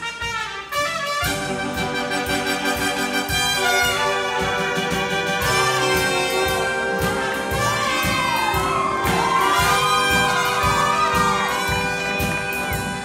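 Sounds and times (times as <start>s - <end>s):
brass-led swing band music: 0.0s - 13.0s.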